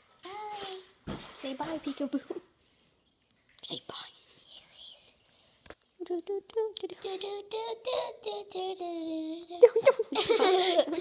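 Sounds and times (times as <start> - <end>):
faint whispering: 3.6 - 5.5.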